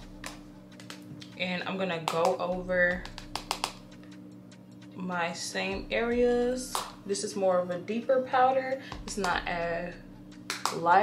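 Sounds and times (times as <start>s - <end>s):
faint electrical hum: 0.0s - 11.0s
makeup compact clicks and taps: 3.0s - 3.8s.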